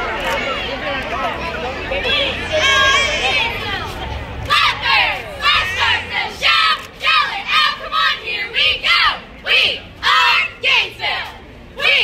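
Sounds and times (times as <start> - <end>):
cheerleaders shouting a cheer: 2.0 - 12.0.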